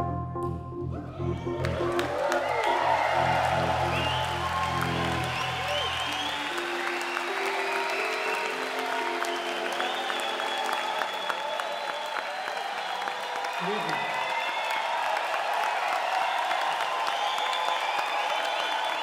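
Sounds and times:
deep bass layer: 0:00.0 - 0:06.3
held synthesizer notes: 0:00.0 - 0:06.7
audience applauding and cheering: 0:01.1 - 0:19.0
whoops and whistles: 0:03.6 - 0:14.9, 0:15.9 - 0:19.0.

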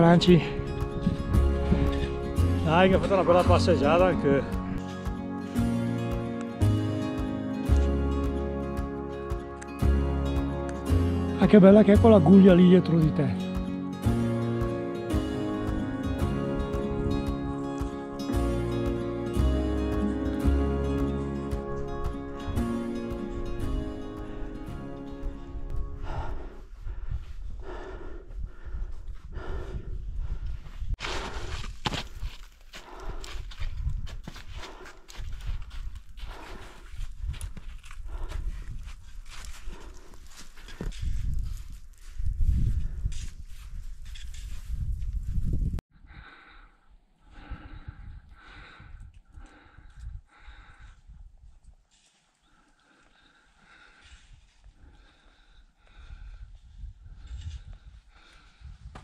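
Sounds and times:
hard breathing: 0:23.6 - 0:43.8, 0:46.0 - 0:59.0
footsteps crunching in snow: 0:30.6 - 0:45.7, 0:51.8 - 0:52.6.

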